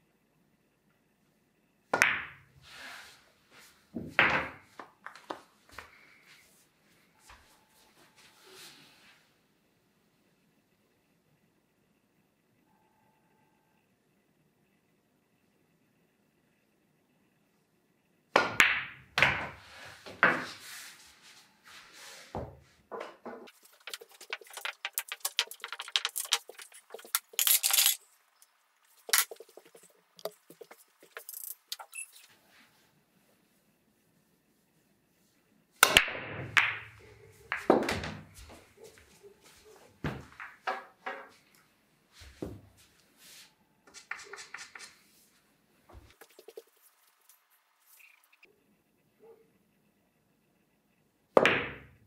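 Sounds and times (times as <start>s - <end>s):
pool balls clacking: 22.9s - 27.9s, 29.0s - 31.8s, 35.8s - 39.0s.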